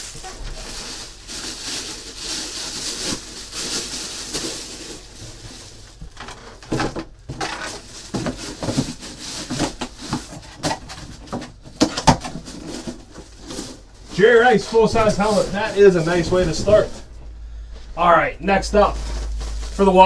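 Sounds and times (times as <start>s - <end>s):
plastic packaging crinkling: 0.0s - 17.1s, 18.8s - 20.0s
knocks of cardboard packaging: 6.0s - 13.3s.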